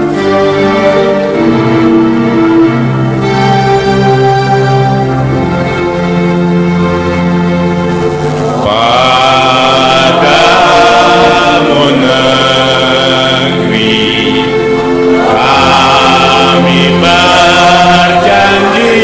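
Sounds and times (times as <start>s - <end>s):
instrumental accompaniment: 0.0s - 19.0s
group of voices singing: 8.4s - 19.0s.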